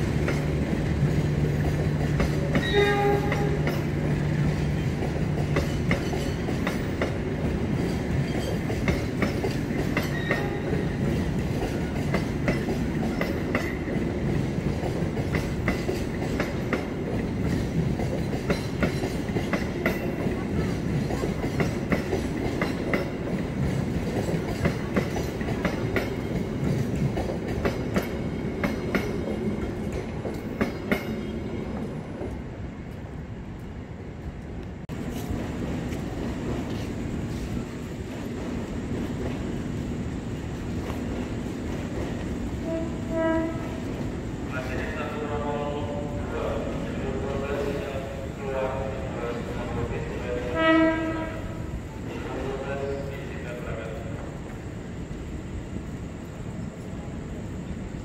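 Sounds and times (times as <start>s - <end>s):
train wheels clicking over rail joints: 0.0s - 32.4s.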